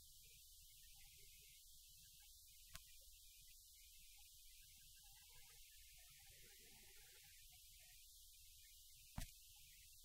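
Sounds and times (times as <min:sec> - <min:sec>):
faint click: 0:02.7 - 0:02.9.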